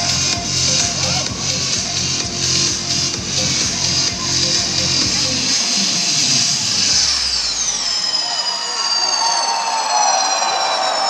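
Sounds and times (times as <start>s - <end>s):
high synth tones sweeping down: 0.0s - 11.0s
live dance music: 0.0s - 11.0s
crowd cheering and screaming: 3.8s - 11.0s.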